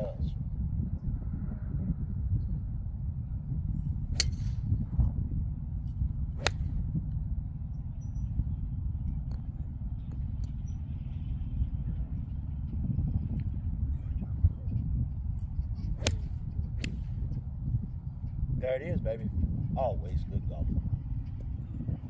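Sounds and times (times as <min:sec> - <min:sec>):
steady low rumble: 0:00.0 - 0:22.0
golf club striking ball: 0:04.1 - 0:04.8, 0:05.8 - 0:06.9, 0:16.0 - 0:17.2.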